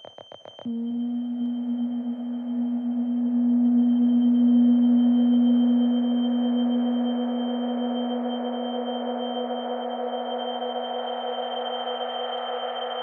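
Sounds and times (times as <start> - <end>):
ambient electronic drone music: 0.7 - 13.0.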